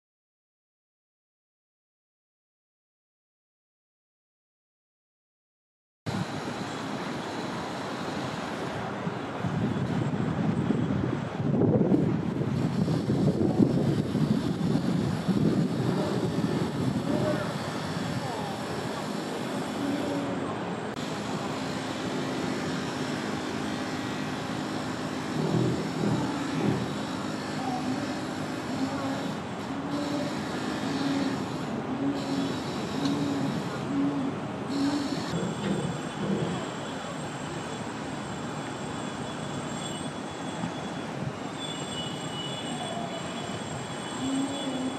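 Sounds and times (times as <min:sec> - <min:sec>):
distant traffic: 0:06.1 - 0:44.9.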